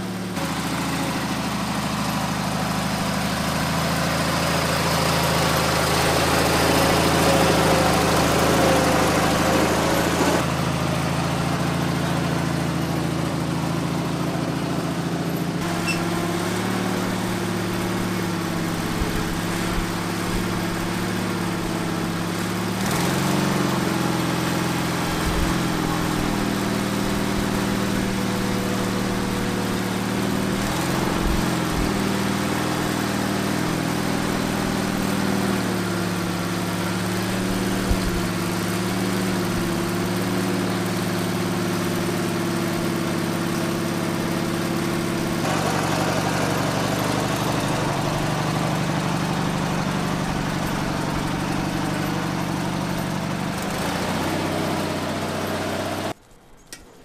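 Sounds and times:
garden tractor engine running: 0.0 - 57.0.

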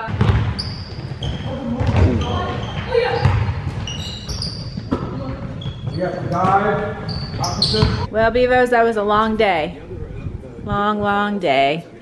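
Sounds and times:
ball bouncing on hardwood floor: 0.0 - 6.6
sneakers squeaking: 0.0 - 8.1.

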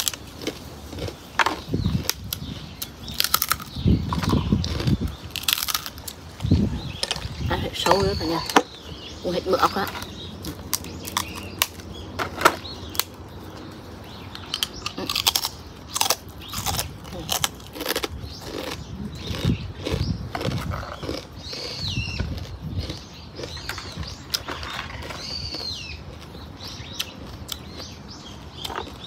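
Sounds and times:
crunching rice cracker: 0.0 - 7.3, 14.4 - 26.4.

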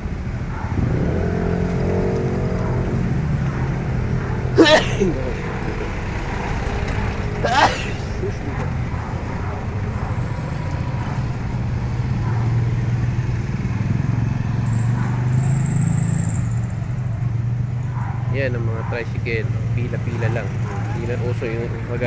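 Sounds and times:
motorcycle engines humming: 0.0 - 22.0
person calling out: 4.6 - 5.7, 7.4 - 8.6.

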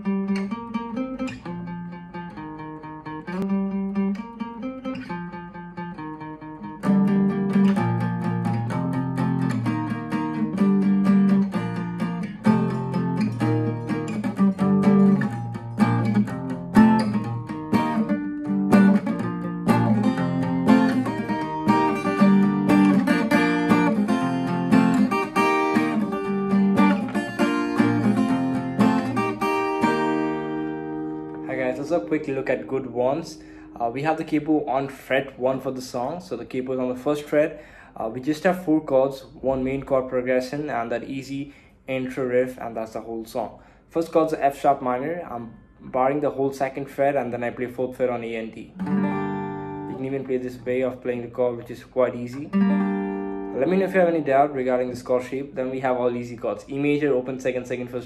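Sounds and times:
acoustic guitar picking and strumming: 0.0 - 43.4, 44.0 - 58.0.

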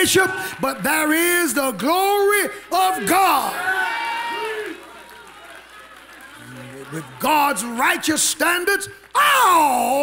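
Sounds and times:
man preaching over a microphone: 0.0 - 3.6, 6.6 - 10.0.

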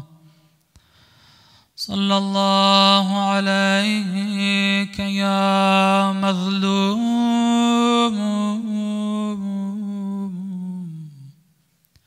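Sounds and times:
man chanting a recitation: 1.8 - 11.1.

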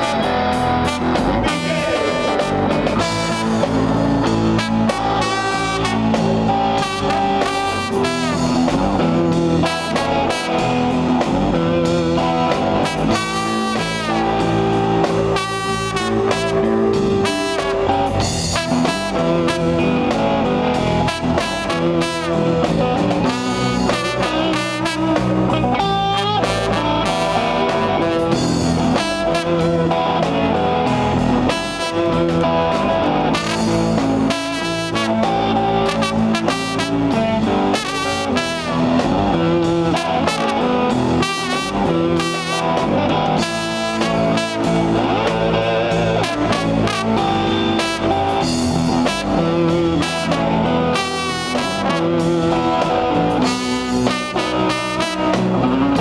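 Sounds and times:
drums: 0.0 - 56.0
electric guitar: 0.0 - 56.0
trombone wavering notes: 0.0 - 56.0.

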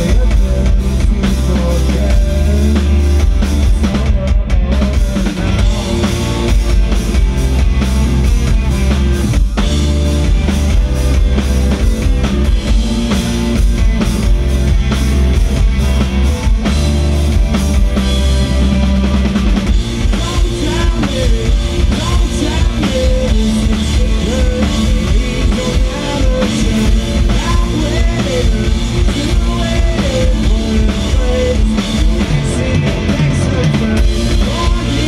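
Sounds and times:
rock band playing: 0.0 - 35.0.

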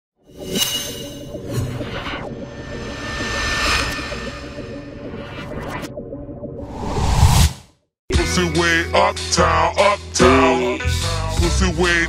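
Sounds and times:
whooshes: 0.4 - 7.7
rising swell: 1.9 - 7.5
low steady drone: 2.3 - 5.8.

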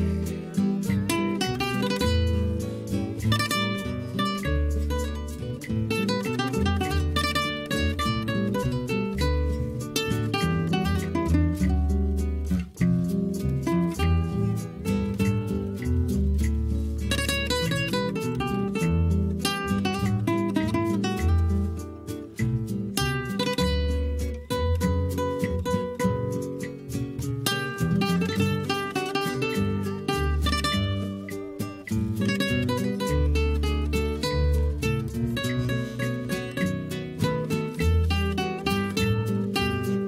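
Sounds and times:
acoustic guitars playing: 0.0 - 40.0.

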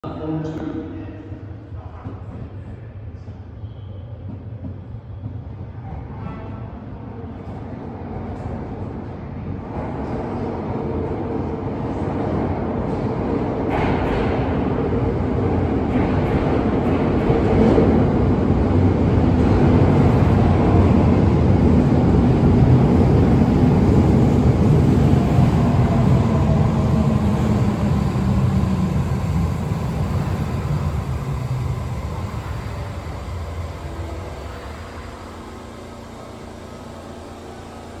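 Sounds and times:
electric train passing: 8.8 - 38.0.

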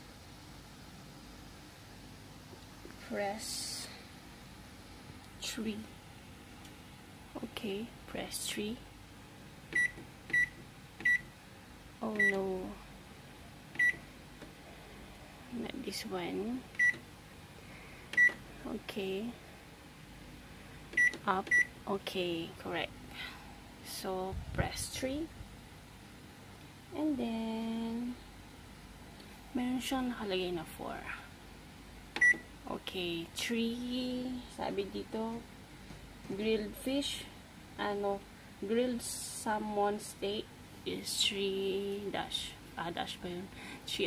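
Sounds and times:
microwave button beep: 9.8 - 11.3, 13.8 - 14.0, 16.8 - 17.0, 18.2 - 18.4, 21.0 - 21.7, 32.2 - 32.5.

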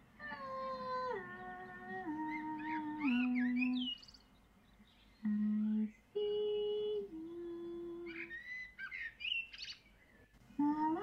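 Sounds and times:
high voice singing wordless notes: 0.1 - 4.1, 5.2 - 8.4, 10.6 - 11.0.

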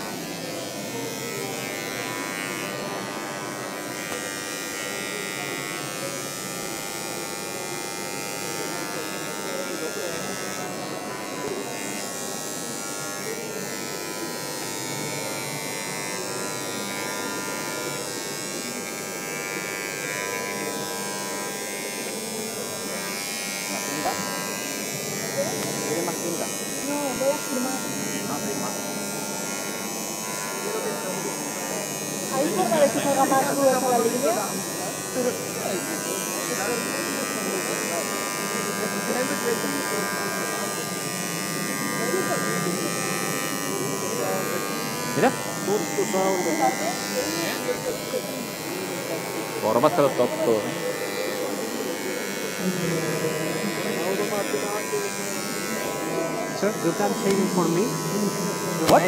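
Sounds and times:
faint voices: 0.0 - 59.0
rotary tool high whine: 0.0 - 59.0.

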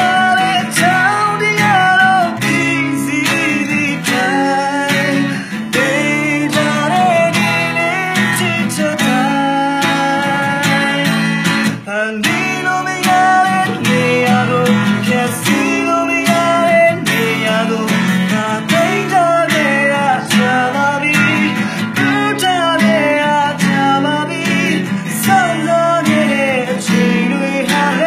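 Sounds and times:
acoustic guitar strumming chords: 0.0 - 28.0
man singing: 0.0 - 28.0.

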